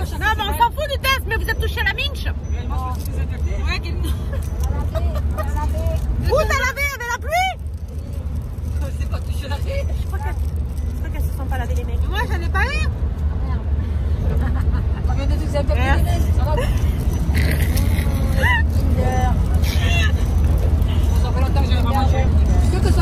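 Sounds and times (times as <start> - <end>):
women talking: 0.0 - 7.6, 8.7 - 13.7, 15.0 - 23.0
car driving rumble: 0.0 - 23.0.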